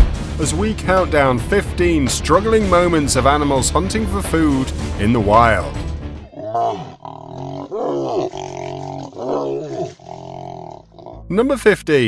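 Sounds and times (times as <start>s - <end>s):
lion snarling and roaring: 6.2s - 11.2s
hyenas calling: 6.2s - 11.3s.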